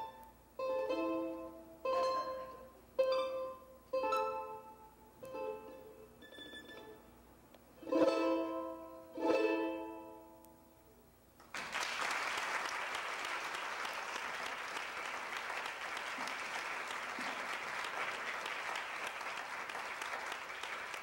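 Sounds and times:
audience applauding: 11.4 - 21.0.

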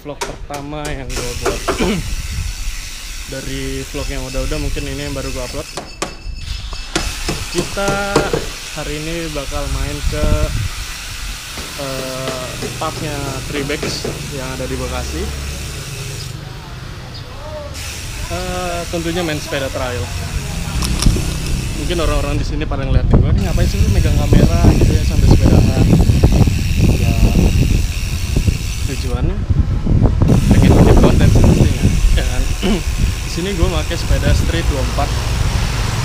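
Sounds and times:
wind noise on microphone: 0.0 - 13.5, 20.0 - 36.0
man speaking: 11.8 - 15.5, 17.3 - 21.0.

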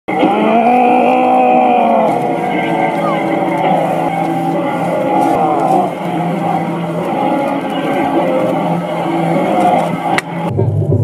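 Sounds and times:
people howling shouts: 0.1 - 10.5.

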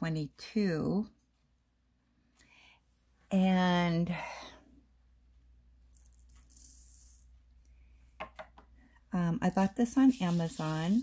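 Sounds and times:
plastic beads rattling: 5.8 - 7.8.

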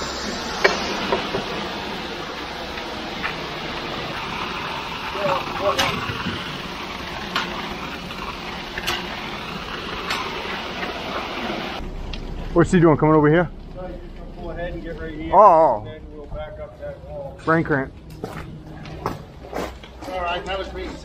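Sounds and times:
concrete pouring down chute: 0.0 - 11.8
concrete mixer truck running: 0.0 - 16.3.

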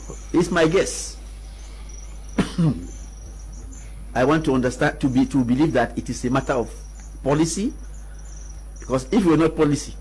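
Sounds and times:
low hum: 0.0 - 10.0
man coughing: 2.4 - 3.0.

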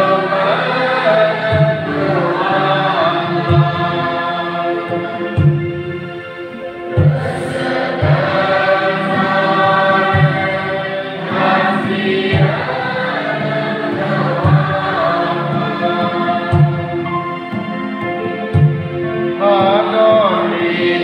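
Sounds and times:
congregation singing a hymn: 0.0 - 21.0
low drum beat: 7.0 - 17.3.

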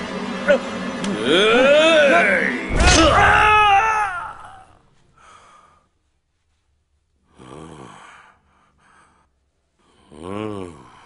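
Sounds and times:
breathy exhale: 5.1 - 5.9.

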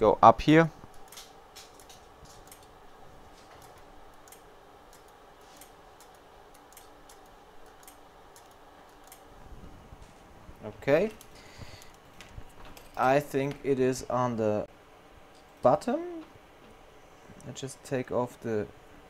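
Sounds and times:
faint steady hum: 0.0 - 19.0
light clicks and ticks: 0.9 - 2.7, 3.6 - 9.2.

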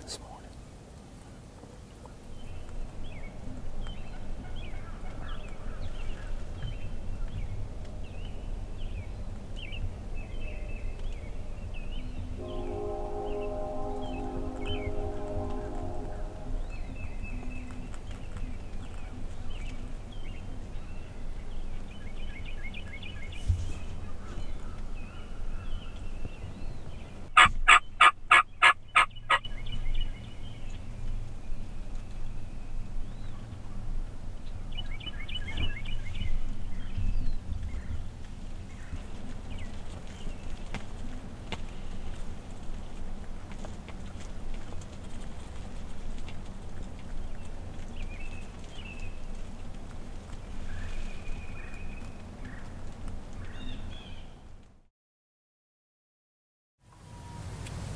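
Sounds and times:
small songbirds chirping: 1.9 - 54.6
turkey gobbling: 27.4 - 29.4.

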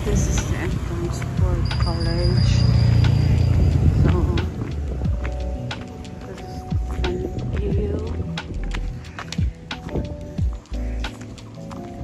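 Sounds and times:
loud low rumble: 0.0 - 5.2.

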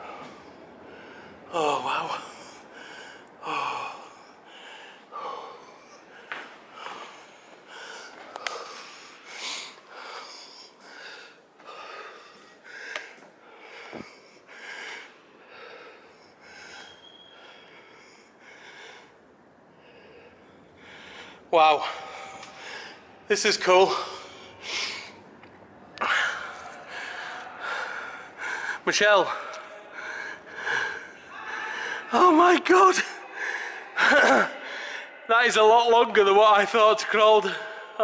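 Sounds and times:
man panting: 0.0 - 25.2, 26.0 - 35.3.

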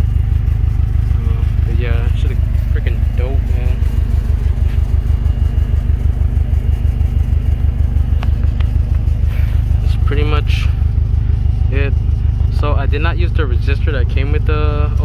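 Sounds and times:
car engine idling: 0.0 - 15.0.

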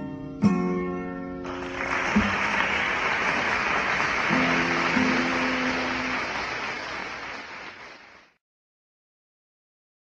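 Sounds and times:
audience applauding: 1.4 - 8.4
acoustic guitar chord ringing: 3.3 - 6.3.

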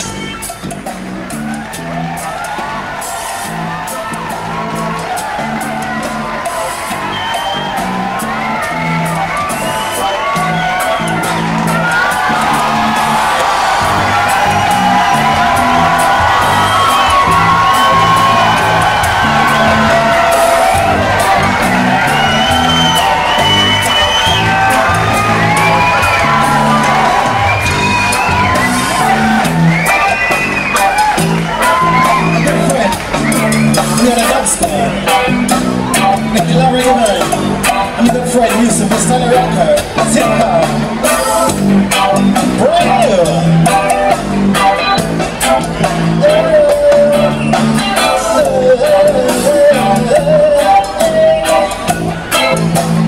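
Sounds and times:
crowd cheering and whooping: 0.0 - 53.0
live band drums and bass: 0.0 - 53.0.

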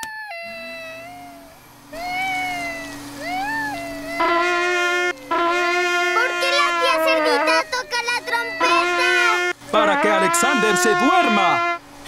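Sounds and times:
cartoon baby crying: 0.0 - 4.4, 6.9 - 9.4
trumpet held note: 4.2 - 7.6, 8.6 - 11.9.

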